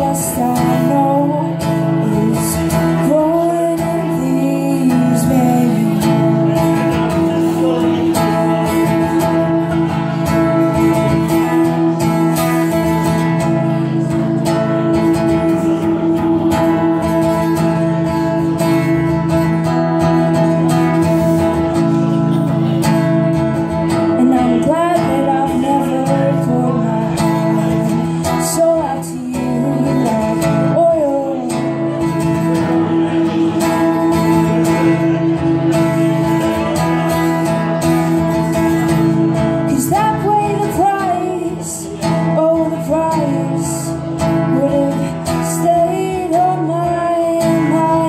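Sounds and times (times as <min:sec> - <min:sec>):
woman singing: 0:00.0 - 0:19.4, 0:23.8 - 0:48.0
acoustic guitar strumming: 0:00.0 - 0:48.0.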